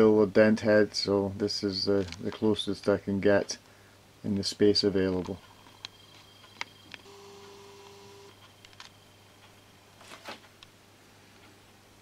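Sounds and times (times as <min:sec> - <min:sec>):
low steady hum: 0:00.0 - 0:12.0
camcorder zoom motor whine: 0:05.7 - 0:09.0.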